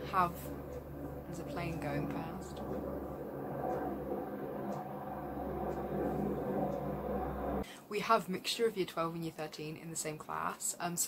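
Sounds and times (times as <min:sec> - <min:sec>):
aeroplane passing with low drone: 0:00.0 - 0:07.6.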